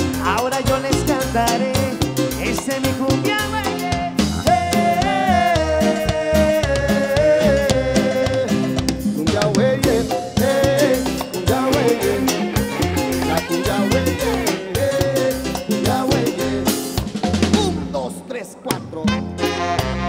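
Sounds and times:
electric guitar: 0.0 - 17.9
electric bass: 0.0 - 18.2
congas: 0.0 - 20.0
drum kit: 0.0 - 20.0
saxophones: 9.9 - 16.6, 19.1 - 20.0.

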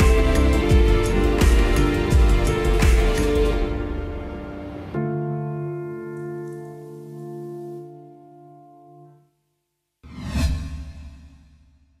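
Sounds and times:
whoosh with deep rumble: 10.1 - 11.8.

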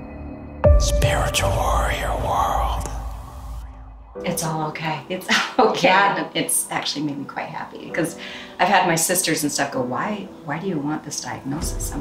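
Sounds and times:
low rumble: 0.6 - 4.4
echoing whispered voice: 0.7 - 4.4.

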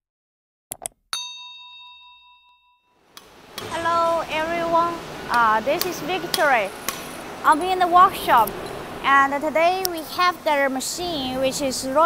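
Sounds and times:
notification bell ding: 1.2 - 3.0.

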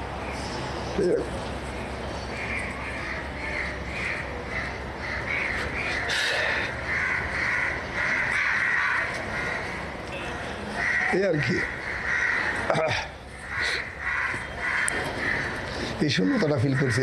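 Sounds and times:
birds calling: 0.0 - 17.0.

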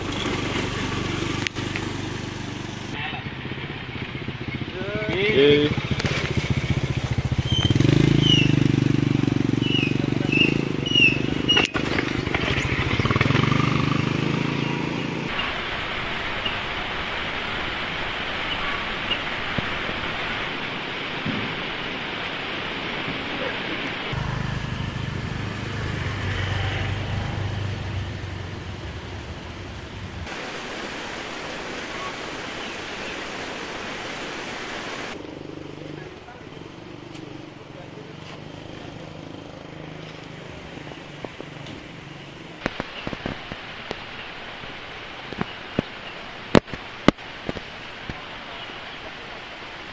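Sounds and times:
small motorcycle engine running: 0.0 - 15.3, 24.1 - 29.2
rushing outdoor noise: 0.0 - 49.9
bird chirps: 7.3 - 8.6, 9.6 - 13.2.

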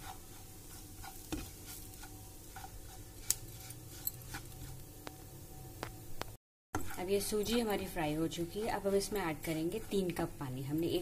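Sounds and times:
spatula scraping in pan: 0.0 - 4.9, 6.8 - 11.0.

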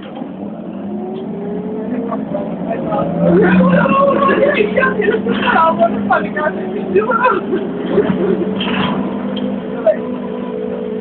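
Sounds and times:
bus engine low note: 0.0 - 11.0.

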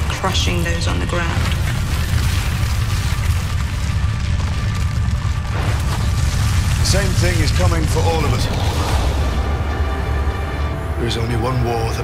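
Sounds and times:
deep low rumble: 0.0 - 12.0
swell of noise: 6.7 - 11.3.

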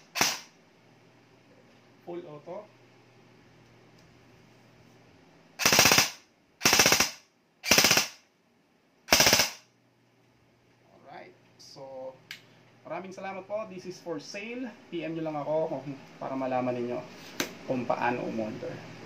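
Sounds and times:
airsoft rifle full-auto bursts: 0.0 - 0.5, 5.6 - 8.2, 9.1 - 9.7.

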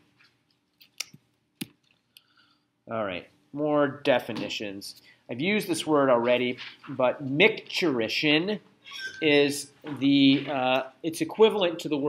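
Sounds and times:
man talking: 2.9 - 12.0.

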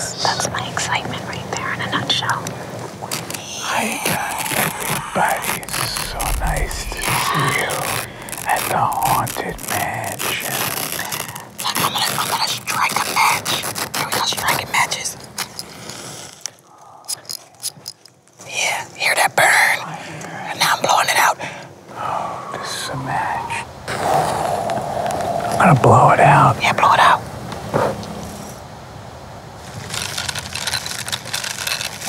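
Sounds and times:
bubble wrap crinkling: 3.1 - 16.6, 29.6 - 32.0
match crackling: 3.1 - 16.6
match flaring hiss: 3.2 - 14.0.

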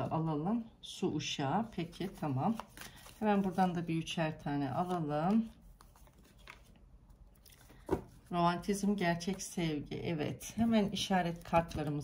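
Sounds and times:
handling cards: 1.9 - 3.8, 4.6 - 8.3.

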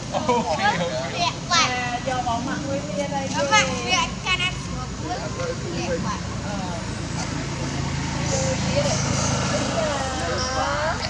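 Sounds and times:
low traffic hum: 0.0 - 11.0
voices: 0.0 - 11.0.

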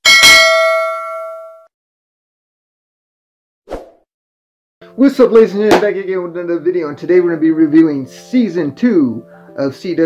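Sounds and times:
notification bell ding: 0.0 - 1.7.

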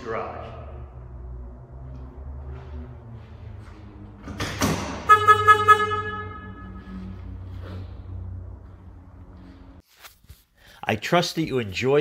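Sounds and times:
pulsing horn-like tone: 4.9 - 9.6.

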